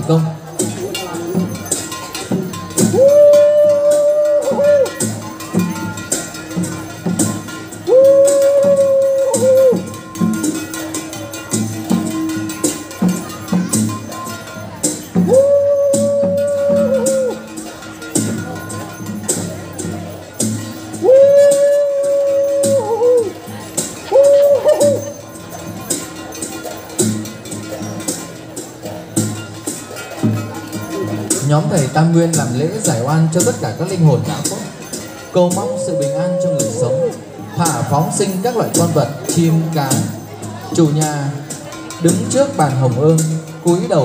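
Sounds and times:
faint ceremonial percussion: 0.0 - 44.0.

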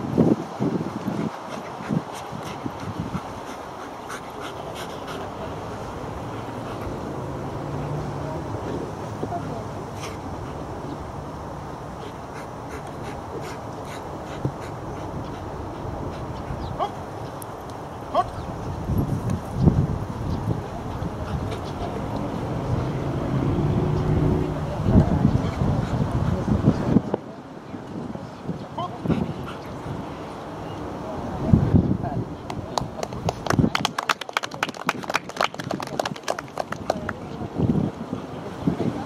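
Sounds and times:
outdoor background noise: 0.0 - 39.0.

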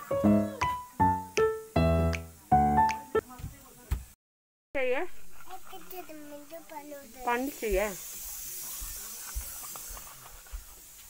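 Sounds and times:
steady high-pitched hiss: 0.0 - 4.2, 4.8 - 11.0.

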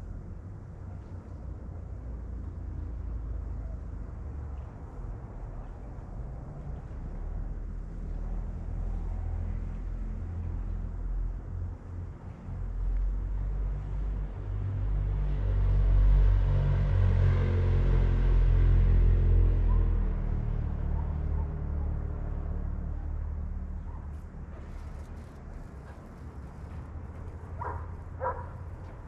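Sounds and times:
passing engine rumble: 2.4 - 29.0.

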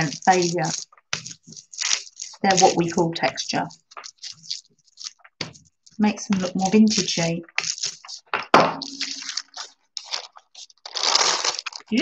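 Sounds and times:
paper crinkling and rustling: 0.0 - 12.0.

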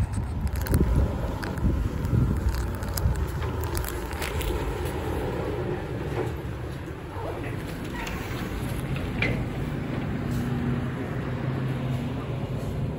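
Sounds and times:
wind buffeting microphone: 0.0 - 12.9.

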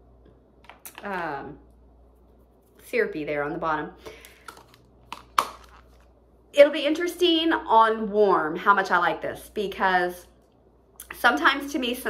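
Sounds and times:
plastic packaging crackling: 4.2 - 6.1.

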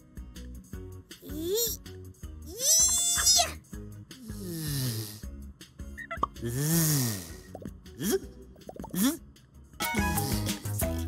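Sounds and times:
children's background music: 0.0 - 11.0.

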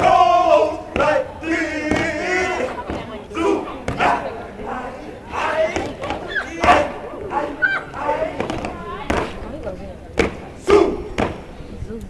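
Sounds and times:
people shouting and calling out: 0.0 - 11.8.

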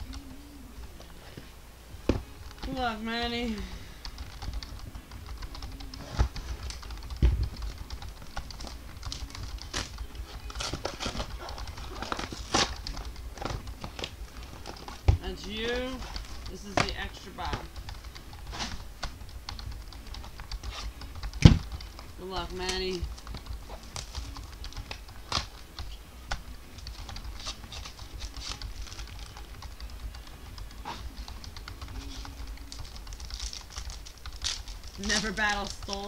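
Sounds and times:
sharp thumps: 6.0 - 24.2
cardboard and wrapper rustling: 8.5 - 17.7, 26.3 - 29.4, 32.0 - 36.0.

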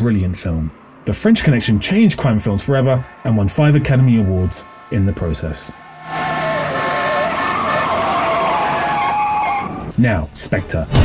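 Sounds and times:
road noise: 0.0 - 10.8
tyres squealing in skid: 0.7 - 10.0.

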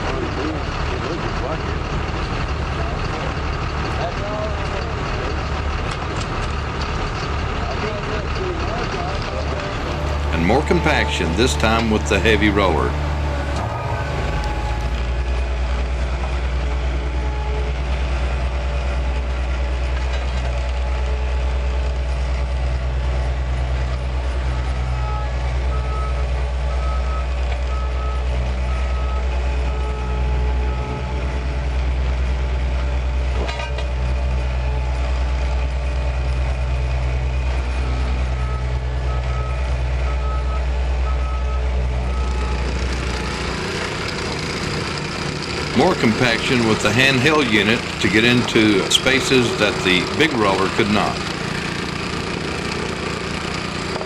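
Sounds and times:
asphalt roller engine droning: 0.0 - 54.0.

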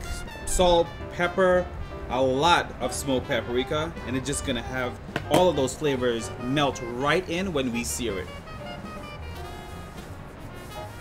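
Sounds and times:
background music with held notes: 0.0 - 11.0.

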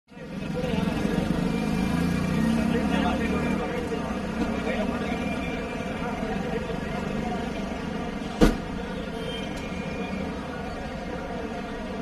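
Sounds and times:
people talking indistinctly: 0.1 - 12.0.

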